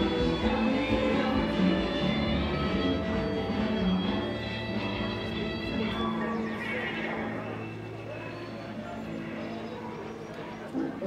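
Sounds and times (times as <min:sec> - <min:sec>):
live band held low note: 0:00.0 - 0:11.0.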